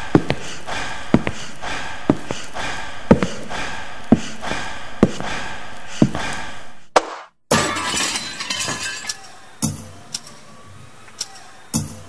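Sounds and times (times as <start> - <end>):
glass breaking crash: 7.5 - 9.4.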